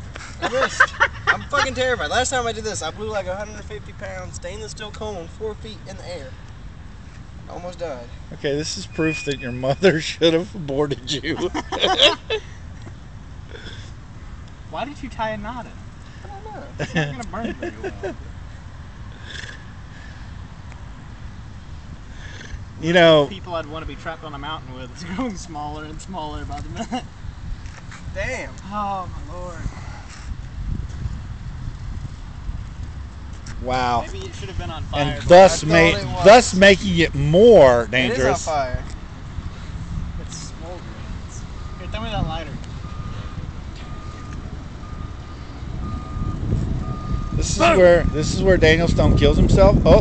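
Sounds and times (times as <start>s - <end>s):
backup alarm beeping: 8.9s - 10.0s, 41.6s - 42.2s, 42.8s - 48.4s
wind rumble on microphone: 25.8s - 36.5s, 38.2s - 50.0s.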